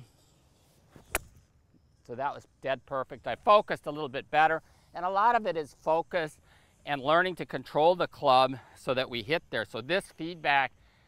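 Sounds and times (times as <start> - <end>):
golf club striking ball: 1.0 - 1.4.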